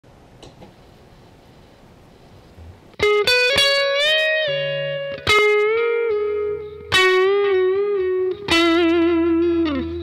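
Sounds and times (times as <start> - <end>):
low steady hiss: 0.1 - 10.0.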